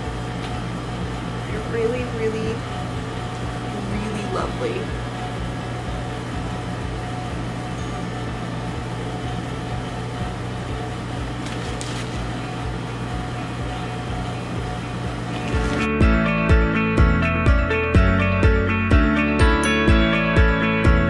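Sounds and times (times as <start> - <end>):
cooling appliance humming: 0.0 - 21.0
music: 0.0 - 21.0.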